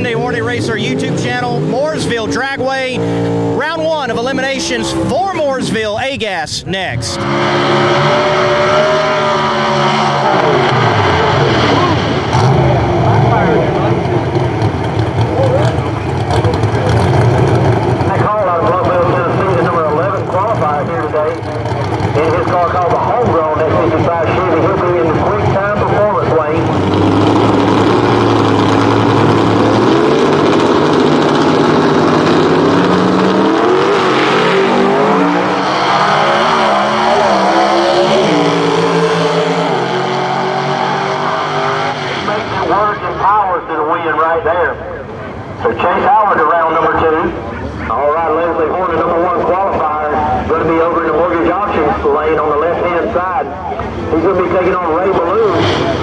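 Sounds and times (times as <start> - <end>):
drag car engines revving: 0.0 - 56.0.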